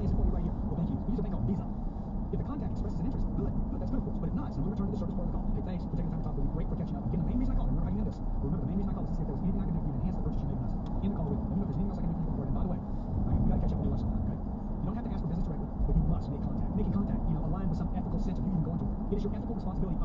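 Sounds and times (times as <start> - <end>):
car cabin road and engine noise: 0.0 - 20.0.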